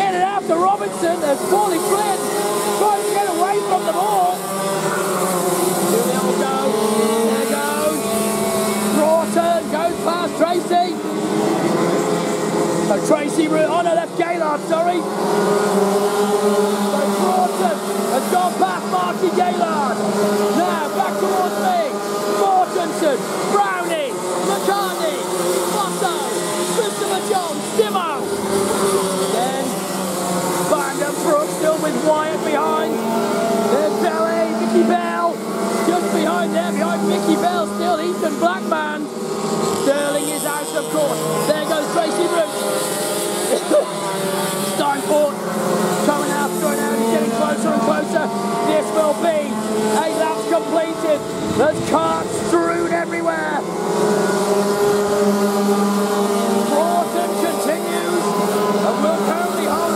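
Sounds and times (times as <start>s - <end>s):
racing kart engines: 0.0s - 59.9s.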